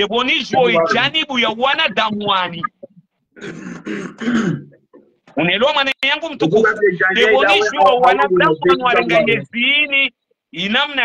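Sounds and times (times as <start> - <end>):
man clearing his throat: 3.4 - 4.8.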